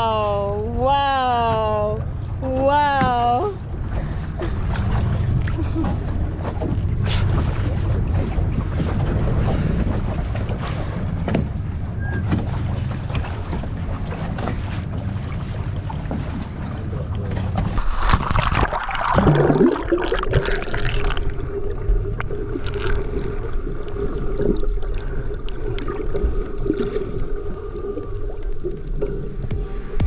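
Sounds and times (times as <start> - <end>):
boat engine rumble: 0.0 - 30.0
wind and water noise: 0.0 - 30.0
steady hum: 15.0 - 30.0.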